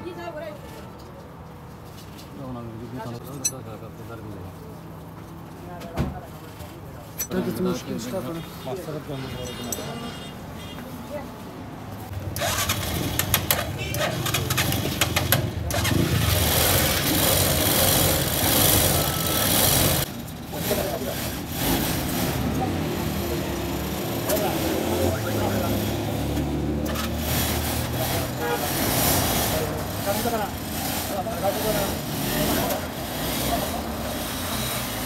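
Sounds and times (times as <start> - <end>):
motorcycle rickshaw engine running: 12.1 - 35.0.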